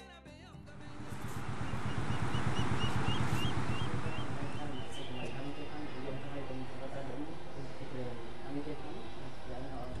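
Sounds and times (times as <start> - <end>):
background music: 0.0 - 10.0
steady low rumble: 0.6 - 10.0.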